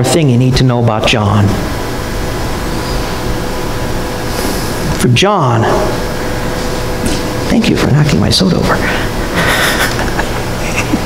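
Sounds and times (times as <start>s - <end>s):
faint steady hum: 0.0s - 11.0s
steady hiss: 1.3s - 10.9s.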